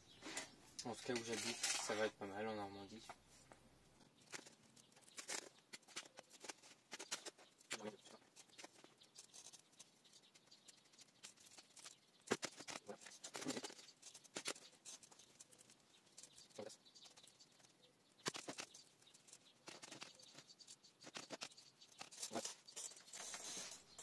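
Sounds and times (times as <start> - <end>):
trowel scratching in soil: 0.2 - 2.2, 21.0 - 24.0.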